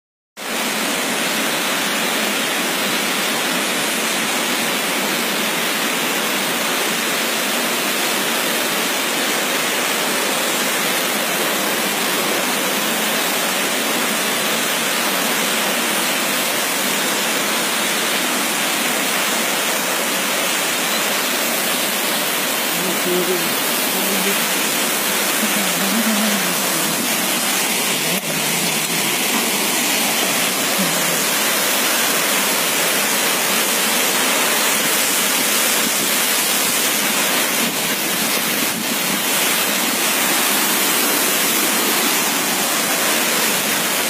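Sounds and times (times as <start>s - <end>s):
waterfall rushing: 0.4s - 44.0s.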